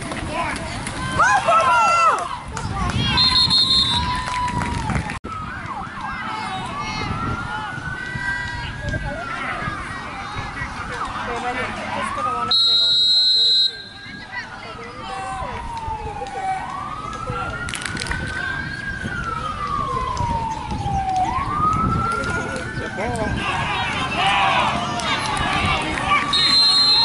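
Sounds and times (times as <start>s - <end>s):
referee's whistle: 3.0s - 4.2s, 12.5s - 14.2s, 26.3s - 27.0s
emergency siren wailing: 3.1s - 9.9s, 10.6s - 27.0s
faint voices: 5.3s - 27.0s.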